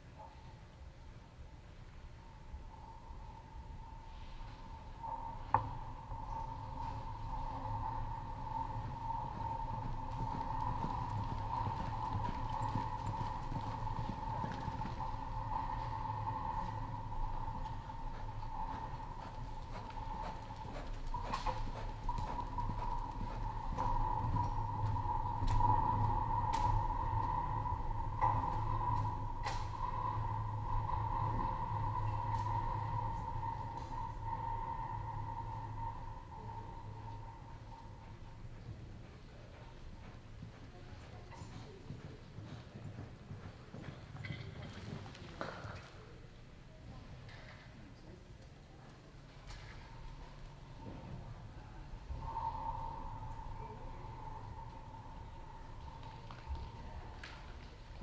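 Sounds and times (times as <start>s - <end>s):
steady hum: 0.0s - 42.0s, 47.8s - 58.0s.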